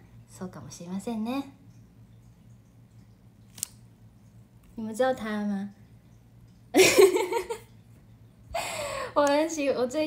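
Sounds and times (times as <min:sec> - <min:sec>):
faint steady hum: 0:00.0 - 0:10.0
woman speaking: 0:00.3 - 0:01.6, 0:04.8 - 0:05.8, 0:09.1 - 0:10.0.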